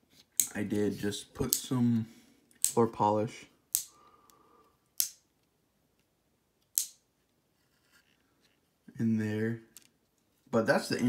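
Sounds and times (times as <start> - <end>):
sharp plastic clicks: 1.4 - 1.7, 2.5 - 2.8, 3.7 - 4.0, 5.0 - 5.3, 6.6 - 7.0.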